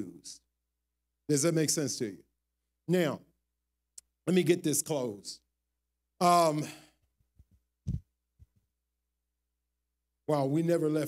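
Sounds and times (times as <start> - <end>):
soft thumps on microphone: 7.4 - 8.5.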